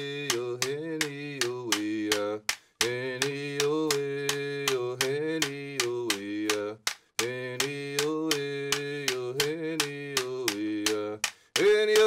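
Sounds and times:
man singing chant-like notes: 0.0s - 12.0s
bamboo clapper stick clicks: 0.2s - 12.0s.

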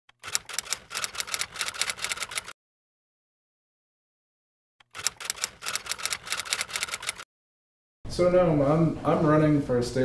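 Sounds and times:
typewriter keystrokes clacking: 0.2s - 2.5s, 4.8s - 7.2s.

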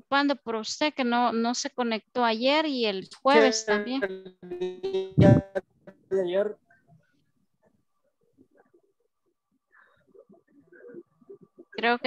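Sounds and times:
garbled voice on video call: 3.0s - 6.6s, 10.1s - 12.0s.

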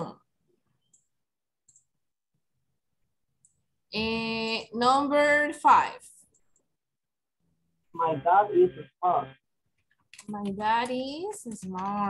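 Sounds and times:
computer mouse clicking: 0.8s - 1.9s, 9.8s - 12.0s.

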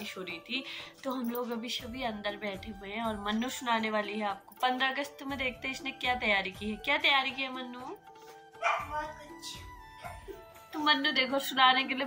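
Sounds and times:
faint background music: 0.0s - 12.0s
dog barking: 8.6s - 9.0s.

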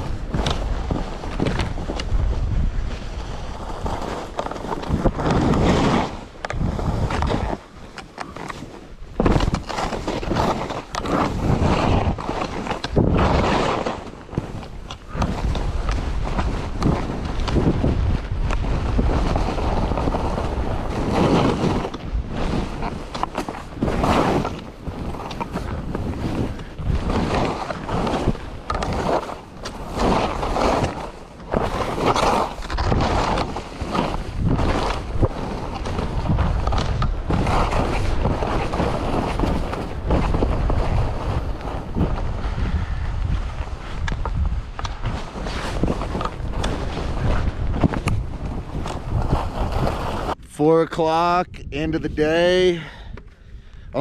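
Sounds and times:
skis carving through soft snow: 0.0s - 50.5s
wind rumbling on microphone: 0.0s - 54.0s.

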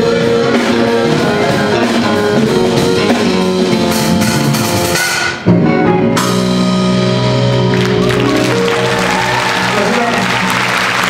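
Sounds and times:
soul-jazz band playing: 0.0s - 11.0s.

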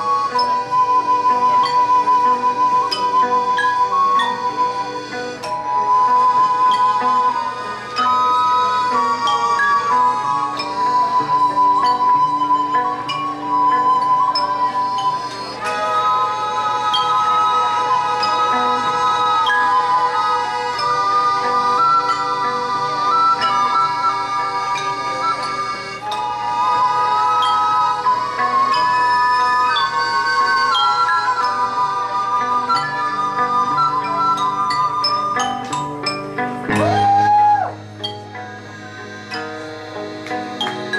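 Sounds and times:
xylophone: 0.0s - 26.4s, 27.4s - 40.9s
accordion: 0.0s - 40.9s
flutes playing melody: 0.0s - 40.9s
guitar: 0.0s - 40.9s
plucked violin: 0.0s - 40.9s.

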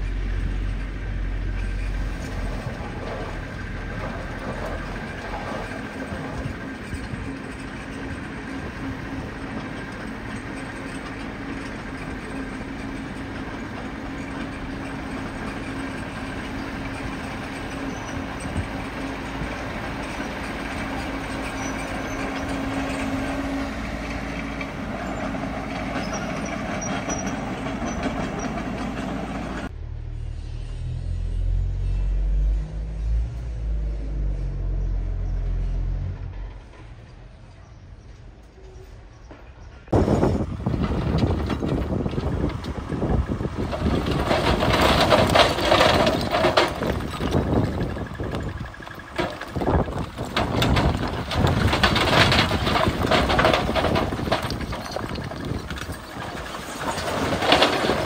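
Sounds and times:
dirt and rock sliding: 0.0s - 29.7s, 40.0s - 58.0s
diesel engine running: 0.0s - 38.2s, 39.9s - 58.0s
deep low rumble: 29.6s - 37.4s.

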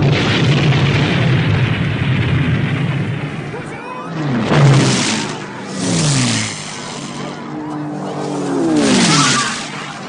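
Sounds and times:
propeller planes passing overhead: 2.1s - 10.0s.

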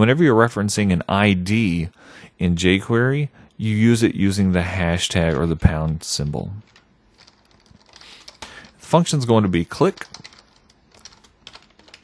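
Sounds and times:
keyboard typing: 6.6s - 12.0s.

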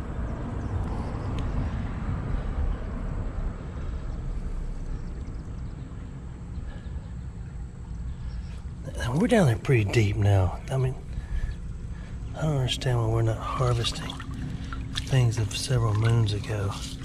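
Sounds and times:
low rumble: 0.0s - 17.0s
creek water over rocks: 8.9s - 17.0s.

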